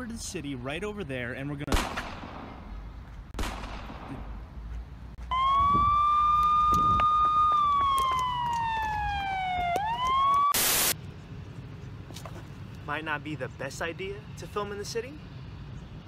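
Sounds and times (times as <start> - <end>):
siren wailing: 5.2 - 11.0
loud burst of noise: 10.5 - 11.0.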